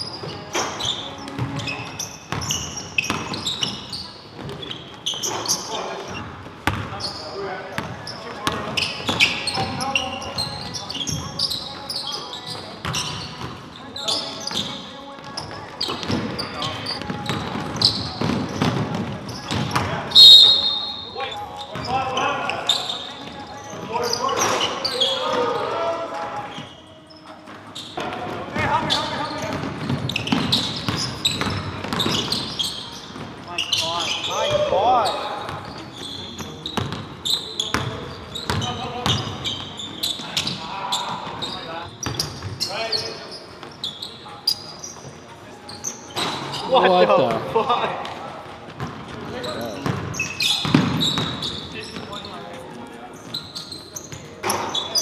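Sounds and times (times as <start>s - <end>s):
sneakers squeaking on court: 0.0s - 25.8s, 26.4s - 47.5s, 48.2s - 55.0s
basketball bouncing on wooden floor: 6.6s - 6.9s, 29.5s - 32.5s, 49.8s - 51.4s
referee's whistle blast: 20.1s - 21.3s
players calling out: 20.1s - 26.7s.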